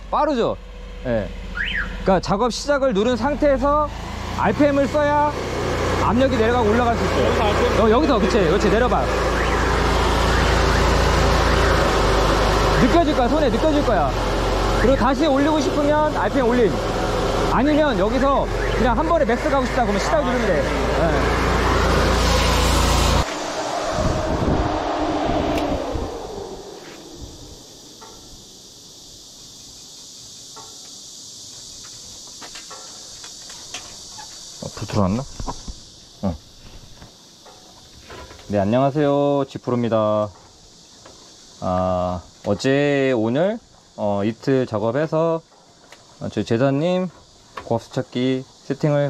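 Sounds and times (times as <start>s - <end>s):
engine driving a pump: 0.0s - 23.7s.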